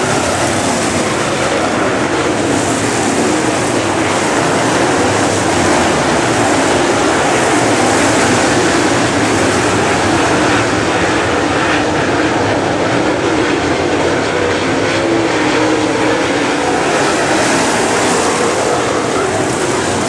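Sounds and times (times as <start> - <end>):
race car engines roaring: 0.0 - 20.0.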